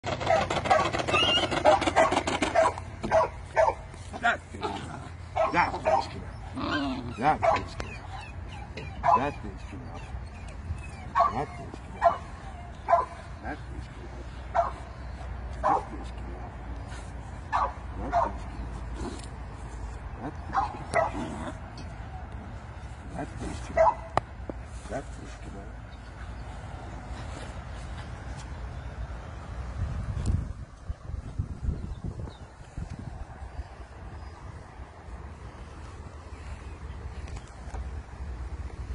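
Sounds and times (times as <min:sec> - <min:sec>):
puppy yapping: 0:00.1 - 0:03.8, 0:05.4 - 0:13.2
puppy giving short high calls: 0:00.2 - 0:02.7.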